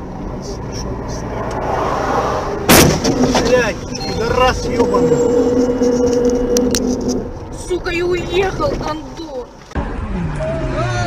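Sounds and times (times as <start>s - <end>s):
loud bang: 2.6s - 7.2s
steady held tone: 3.7s - 7.8s.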